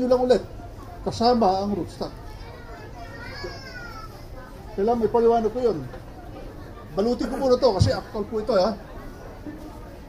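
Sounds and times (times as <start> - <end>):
faint high-pitched voice: 2.1 - 4.7.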